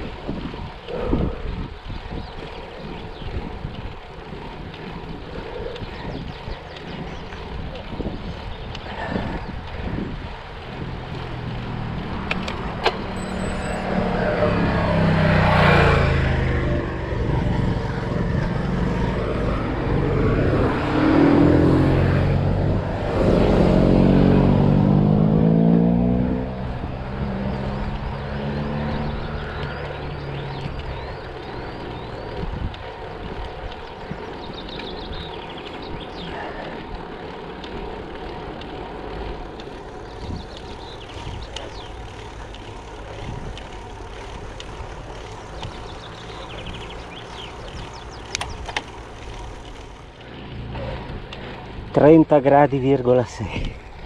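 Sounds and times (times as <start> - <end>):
motor vehicles passing: 0.0 - 54.0
wind and road noise: 0.0 - 54.0.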